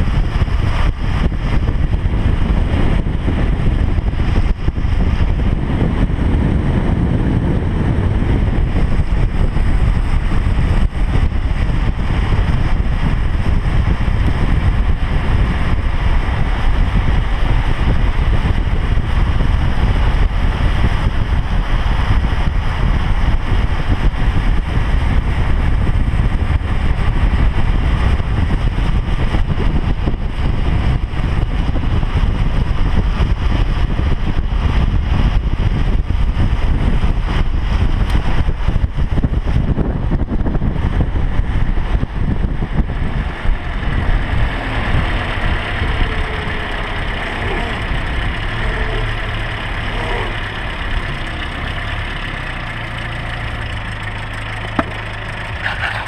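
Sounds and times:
car engine: 0:00.0 - 0:56.0
road noise: 0:00.0 - 0:56.0
wind buffeting microphone: 0:00.0 - 0:56.0.

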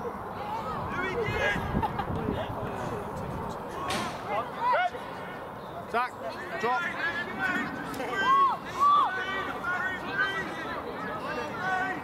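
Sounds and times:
open-air background noise: 0:00.0 - 0:12.0
people shouting: 0:03.7 - 0:05.2, 0:06.4 - 0:12.0.

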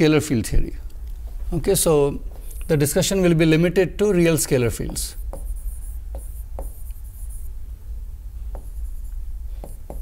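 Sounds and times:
marker scratching on whiteboard: 0:02.3 - 0:03.1, 0:04.4 - 0:07.5, 0:08.5 - 0:10.0
marker tip tapping board: 0:04.8 - 0:07.0, 0:09.6 - 0:10.0.

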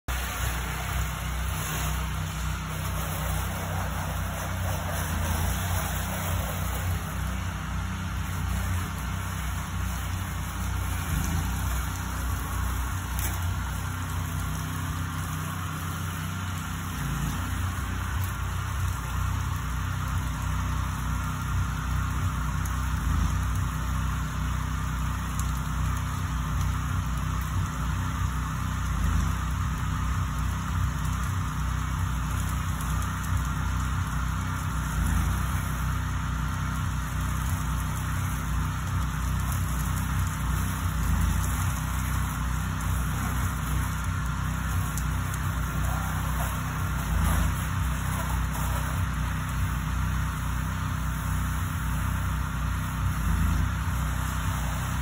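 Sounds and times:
small gasoline engine running: 0:00.0 - 0:55.0
water spraying from hose: 0:00.0 - 0:55.0.

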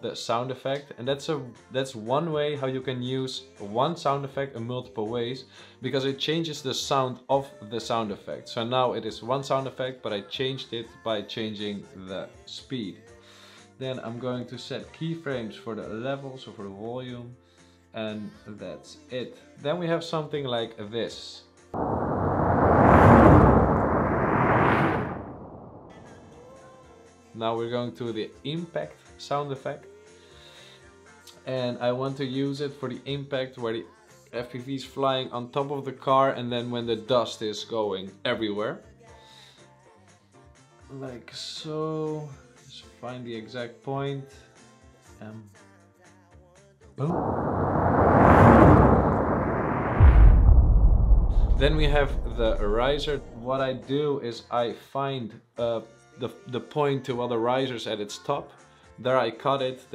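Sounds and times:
car rushing past: 0:21.8 - 0:26.4, 0:47.0 - 0:53.6
deep boom: 0:21.8 - 0:26.4, 0:47.0 - 0:53.7
low rumble: 0:21.8 - 0:26.5, 0:47.0 - 0:53.8.

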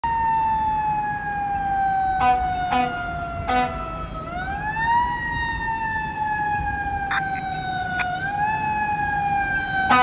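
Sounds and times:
fire truck siren: 0:00.0 - 0:10.0.

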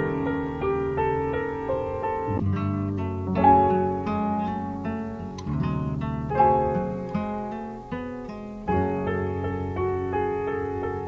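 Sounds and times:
looping melodic music sample: 0:00.0 - 0:11.0.

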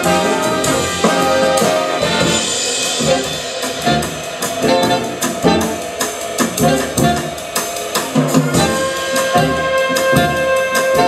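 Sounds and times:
jazz big band playing: 0:00.0 - 0:11.0.

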